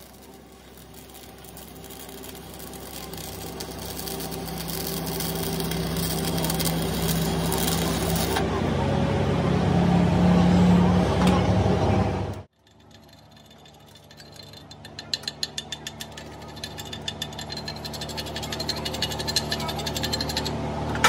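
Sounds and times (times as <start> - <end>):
welding noise: 0.0 - 8.4, 12.5 - 20.6
low machine hum: 0.0 - 21.0
chipping hammer tapping metal: 12.6 - 20.6.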